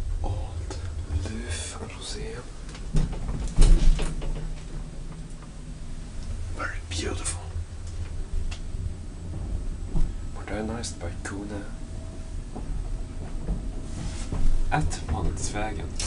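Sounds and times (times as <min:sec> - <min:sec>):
low hum: 0:00.0 - 0:16.0
elevator door clunk: 0:02.5 - 0:06.5.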